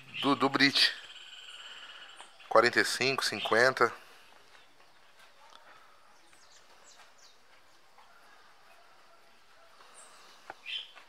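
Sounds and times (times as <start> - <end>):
high bird chirps: 0.0 - 3.8, 9.9 - 11.0.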